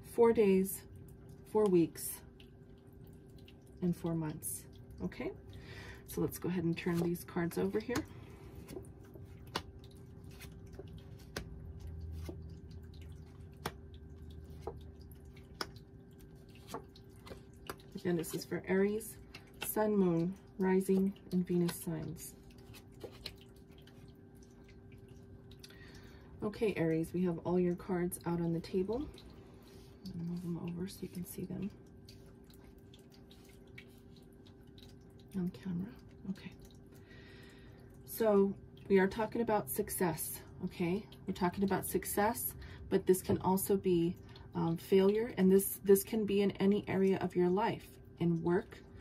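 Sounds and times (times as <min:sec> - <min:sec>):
faint steady hum: 0:00.0 - 0:49.0.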